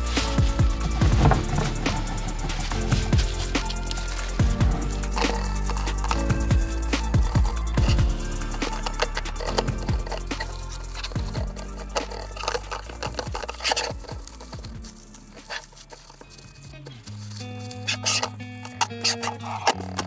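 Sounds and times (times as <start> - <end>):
background music with low notes: 0.0 - 20.0.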